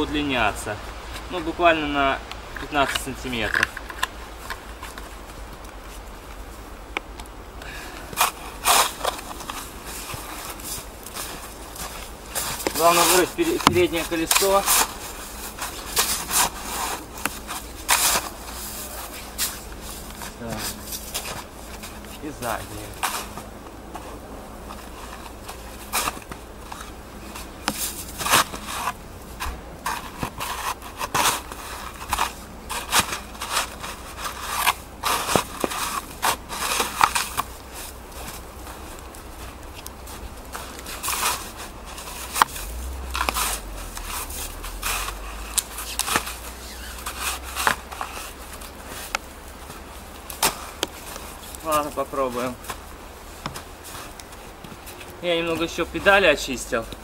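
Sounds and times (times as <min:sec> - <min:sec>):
shovel scraping snow: 0:08.0 - 0:24.1, 0:24.9 - 0:38.9, 0:40.1 - 0:49.2.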